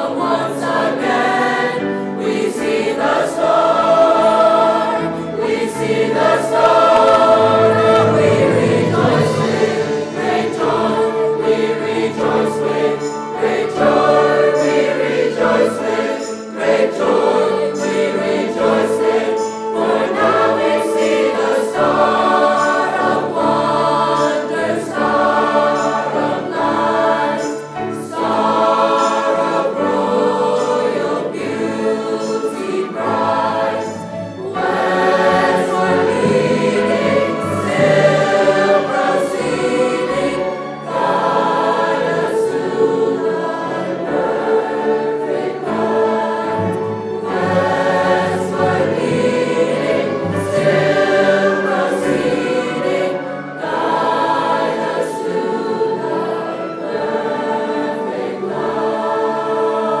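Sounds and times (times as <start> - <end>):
mixed choir singing: 0.0 - 60.0
piano accompaniment: 0.0 - 60.0.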